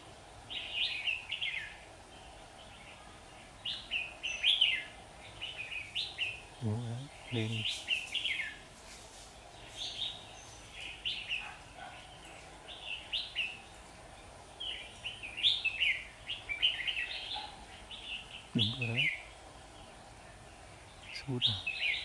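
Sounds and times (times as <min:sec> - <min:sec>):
bulbuls singing bright phrases: 0:00.0 - 0:22.0.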